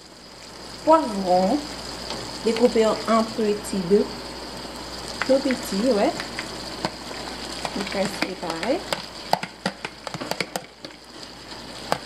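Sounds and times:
faint sizzle from pan: 0.0s - 12.0s
spatula tapping plastic bowl: 7.6s - 11.0s.

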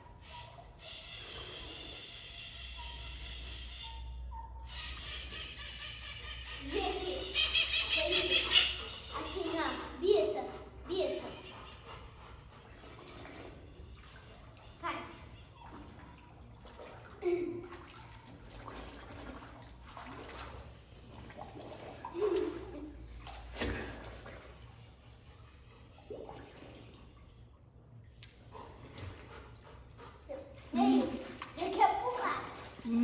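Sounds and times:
pool water splashing: 0.0s - 33.0s.

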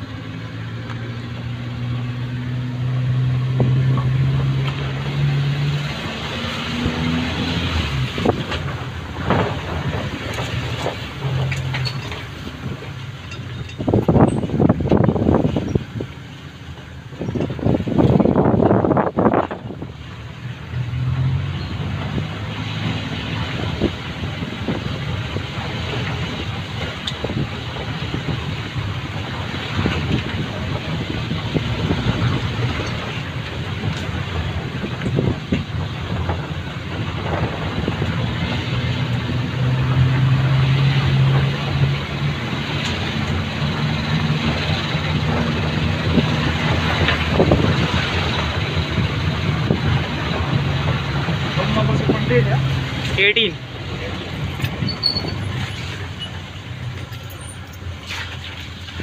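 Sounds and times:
road and body noise: 0.0s - 59.0s.

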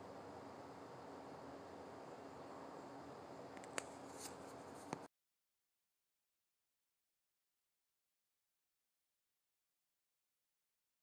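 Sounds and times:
faint hiss with low hum: 0.0s - 5.1s.

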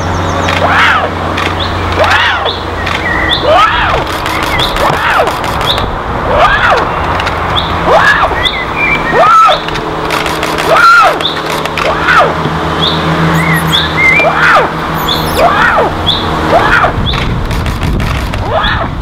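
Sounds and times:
bird calling: 0.0s - 17.8s
steady low hum: 0.0s - 19.0s
high bird chirps: 1.5s - 5.9s, 6.9s - 9.7s, 12.7s - 16.3s.

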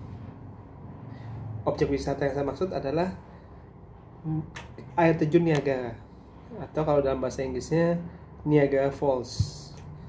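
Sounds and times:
man talking: 4.2s - 6.0s.

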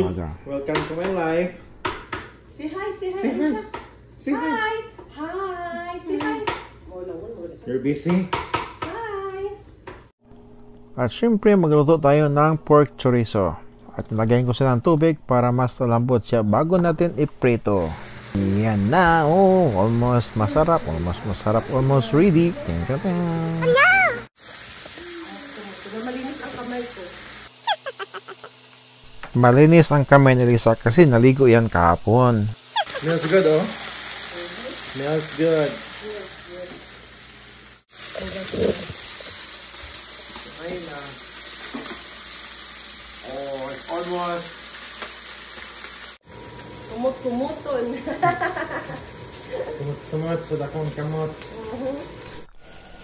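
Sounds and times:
sausage sizzling in frying pan: 17.5s - 52.9s
person exclaiming: 21.6s - 24.3s, 27.7s - 28.5s, 32.8s - 33.2s.

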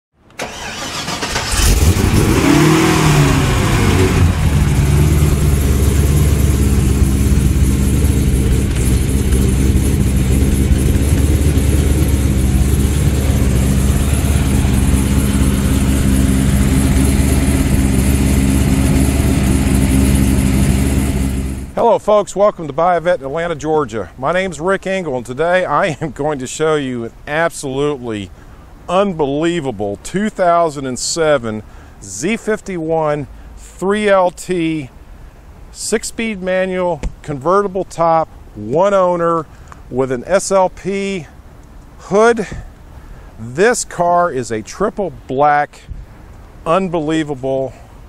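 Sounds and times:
car engine starting and idling: 0.2s - 21.8s.

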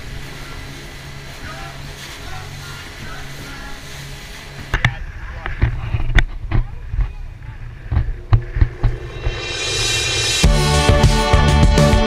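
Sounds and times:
hull slapping waves: 0.0s - 10.6s
motorboat engine drone: 0.0s - 12.0s.

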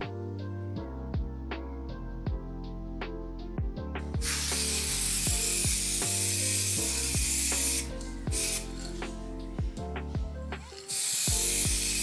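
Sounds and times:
lofi music with steady beat: 0.0s - 12.0s
spray paint can hissing: 4.2s - 9.2s, 10.6s - 12.0s.

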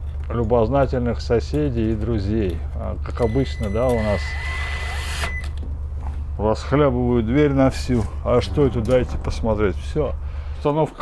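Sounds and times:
cordless drill whining: 3.3s - 5.5s.

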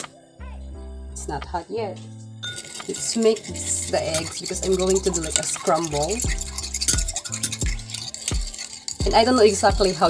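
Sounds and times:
background music with steady beat: 0.0s - 10.0s
metal spoon whisking eggs in bowl: 2.4s - 10.0s.

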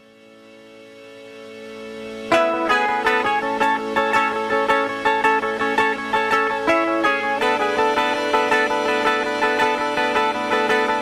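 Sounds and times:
plucked guitar picking: 2.3s - 11.0s.

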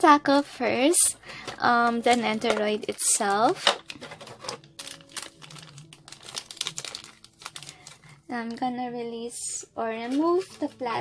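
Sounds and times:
plastic packaging crinkling: 1.8s - 8.6s.

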